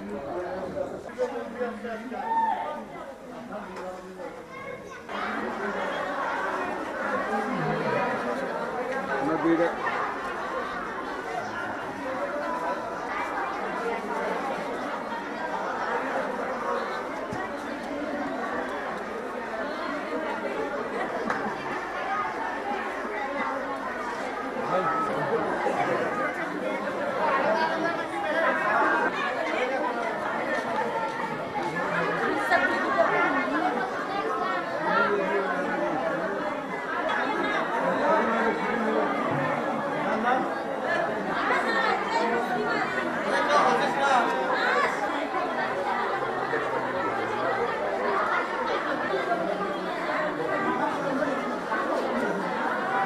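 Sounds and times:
chatter of many people: 0:00.0 - 0:53.0.

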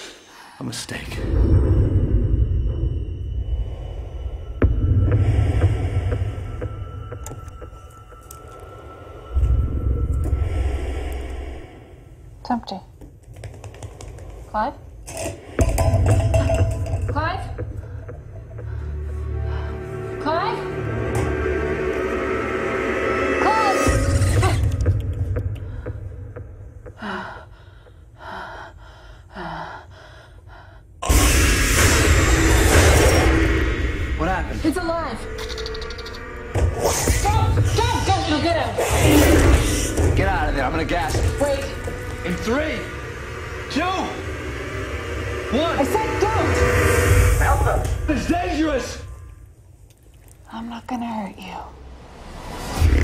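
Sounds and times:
deep heavy drone: 0:01.2 - 0:12.4, 0:15.1 - 0:28.1, 0:31.0 - 0:49.6.

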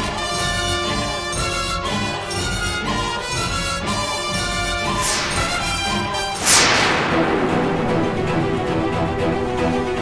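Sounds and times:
dramatic background music: 0:00.0 - 0:10.0
sharp whoosh falling in pitch: 0:05.0 - 0:07.9.

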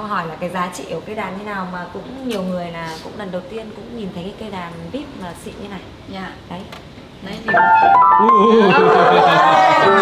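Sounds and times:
grand piano playing: 0:07.5 - 0:10.0.

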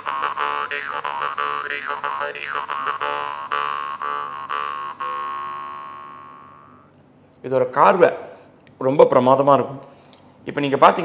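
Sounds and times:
jaw harp plucked: 0:00.0 - 0:06.9.

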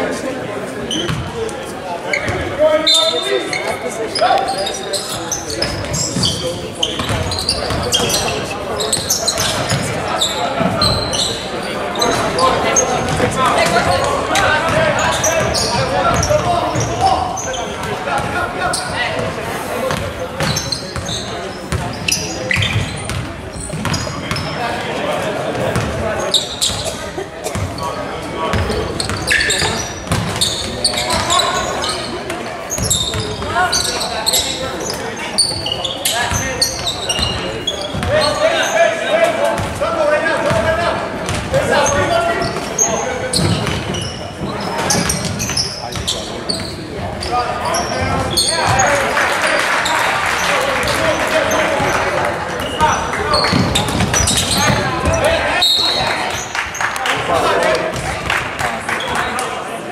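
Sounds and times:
people calling out and shouting: 0:50.7 - 0:56.4.

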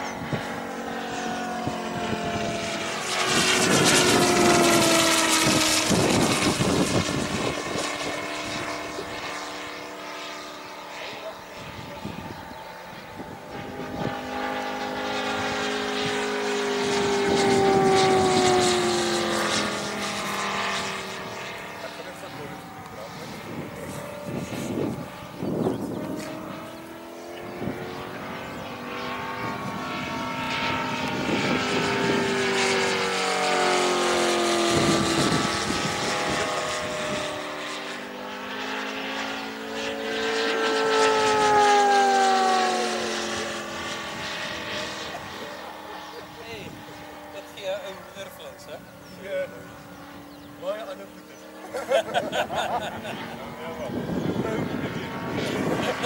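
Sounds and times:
model plane engine flying by: 0:00.0 - 0:56.0.

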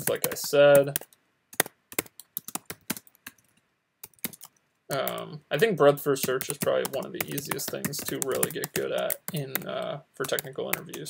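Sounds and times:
typing on computer keyboard: 0:00.0 - 0:05.2, 0:06.2 - 0:11.0.

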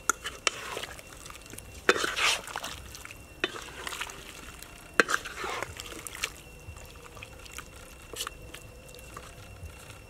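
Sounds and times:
thick soup sloshing: 0:00.2 - 0:10.0.

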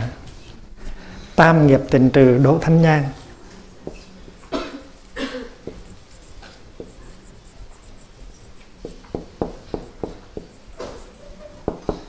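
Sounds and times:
marker writing on a whiteboard: 0:02.6 - 0:12.0.

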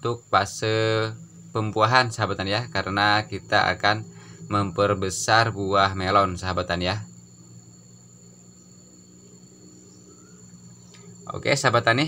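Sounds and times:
crickets chirring: 0:00.0 - 0:12.0
low steady hum: 0:00.0 - 0:12.0.

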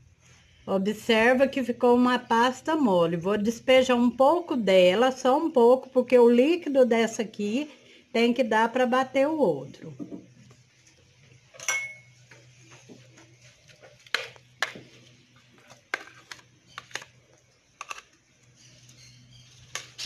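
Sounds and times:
spoon clinking on blender jar: 0:11.6 - 0:12.1.

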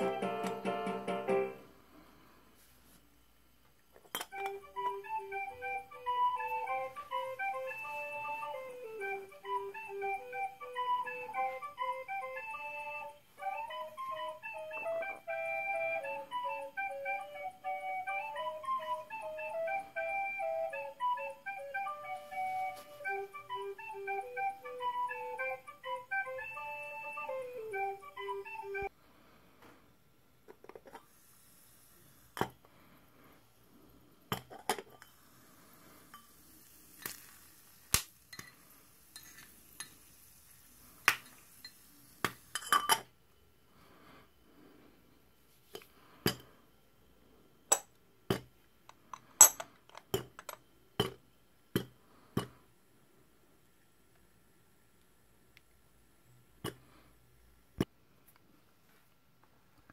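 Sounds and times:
flute-like melody: 0:00.0 - 0:01.7, 0:04.3 - 0:28.9.

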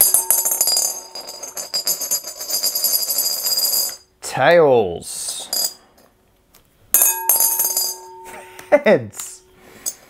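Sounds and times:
glass bowl ringing: 0:00.0 - 0:03.3, 0:07.0 - 0:08.6
coin rattling in glass bowl: 0:00.0 - 0:04.0.

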